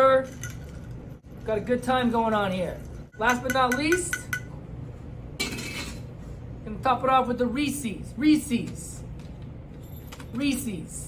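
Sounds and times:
bar tools and glassware clatter: 0.1 - 1.2, 5.4 - 6.1.

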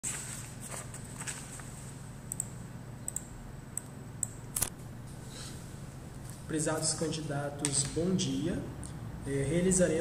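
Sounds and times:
low electrical hum: 0.0 - 10.0
computer mouse clicking: 2.3 - 2.5, 3.1 - 4.7.

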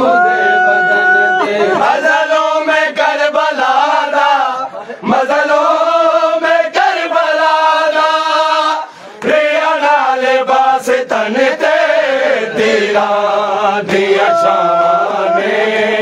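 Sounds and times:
men chanting a lament: 0.0 - 16.0.

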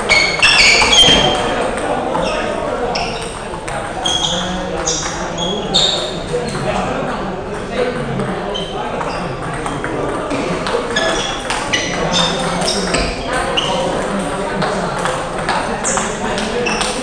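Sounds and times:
table tennis balls clicking: 0.1 - 17.0.

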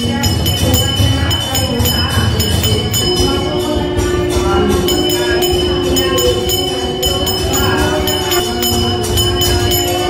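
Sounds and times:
pulsing drumming: 0.0 - 10.0
rhythmic devotional music: 0.0 - 10.0
steady held tone: 0.0 - 10.0.

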